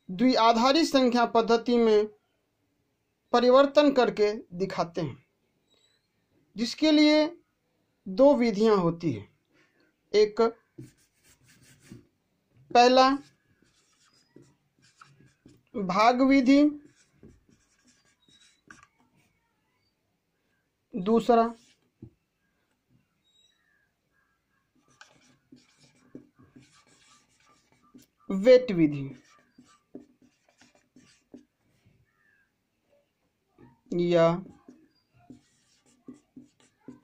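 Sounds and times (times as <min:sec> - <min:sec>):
marker scratching on whiteboard: 0:10.5 - 0:12.1, 0:12.8 - 0:19.9, 0:21.2 - 0:22.1, 0:23.3 - 0:32.4, 0:33.6 - 0:37.0.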